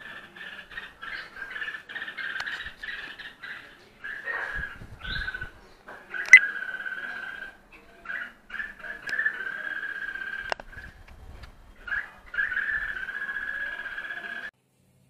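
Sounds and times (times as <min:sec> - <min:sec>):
small animal chattering call: 0:00.0 - 0:11.0, 0:11.8 - 0:14.5.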